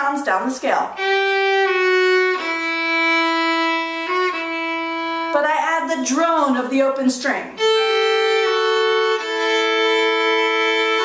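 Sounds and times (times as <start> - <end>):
person speaking: 0.0 - 1.0, 5.3 - 7.7
violin playing slow notes: 0.9 - 5.4, 7.6 - 11.0.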